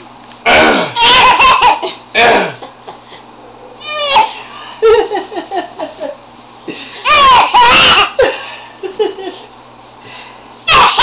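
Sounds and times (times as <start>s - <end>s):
baby clearing throat gruffly: 0.4s - 2.6s
baby laughing: 1.0s - 2.0s, 3.8s - 4.9s, 7.0s - 8.3s, 10.7s - 11.0s.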